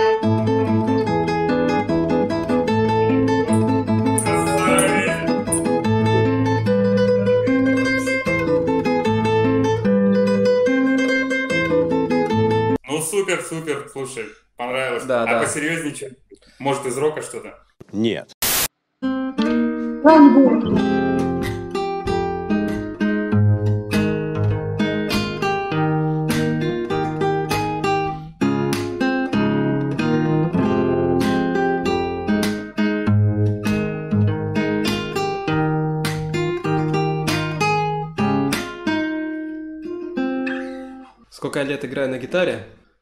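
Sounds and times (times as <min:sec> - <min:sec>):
fingerstyle acoustic guitar: 0:00.0 - 0:12.8, 0:19.1 - 0:41.2.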